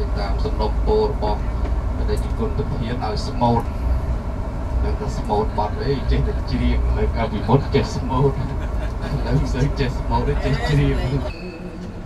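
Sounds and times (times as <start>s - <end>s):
people chatting: 0.0s - 3.7s, 4.8s - 11.4s
vehicle road and engine rumble: 0.0s - 12.0s.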